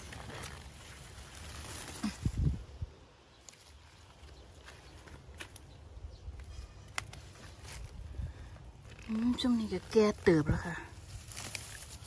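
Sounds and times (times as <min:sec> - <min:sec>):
hands rustling plants: 0:00.0 - 0:12.0.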